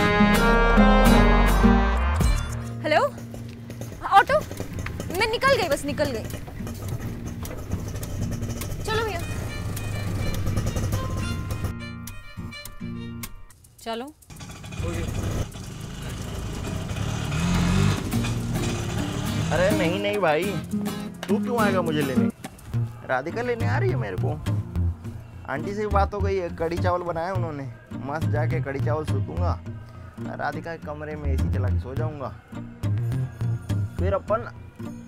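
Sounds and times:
rickshaw engine running: 0:00.0 - 0:12.8, 0:14.2 - 0:20.7
background music: 0:00.0 - 0:35.0.

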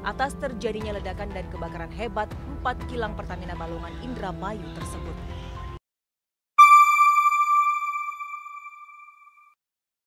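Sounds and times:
chime ringing: 0:06.6 - 0:09.4.

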